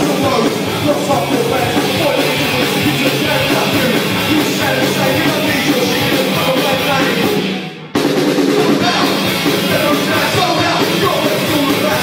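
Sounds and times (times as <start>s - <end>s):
punk rock band playing loud: 0.0s - 12.0s.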